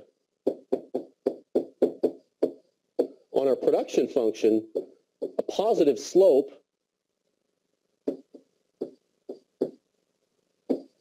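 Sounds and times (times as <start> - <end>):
pen knocking on whiteboard: 0.5 - 3.2, 10.7 - 11.0.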